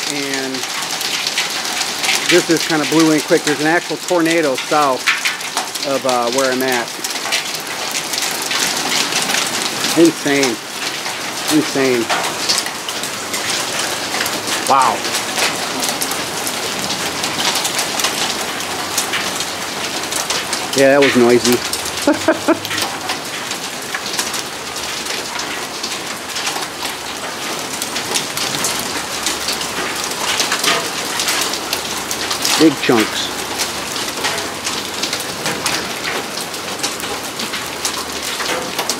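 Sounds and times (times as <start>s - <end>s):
hail clattering: 0.0s - 38.9s.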